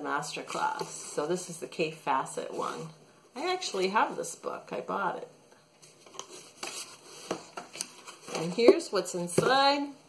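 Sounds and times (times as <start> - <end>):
cardboard packaging rustling: 5.8 - 8.8.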